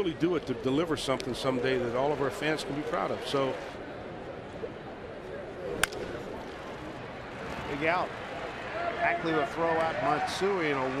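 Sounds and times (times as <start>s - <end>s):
ballpark crowd noise: 0.0s - 11.0s
bat hitting baseball: 5.8s - 6.2s.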